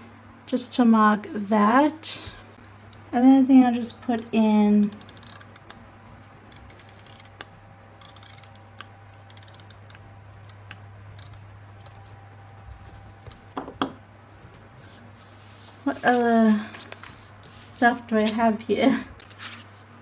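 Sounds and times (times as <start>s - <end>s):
tape runner gear clicking: 4.8s - 5.8s, 6.5s - 12.1s.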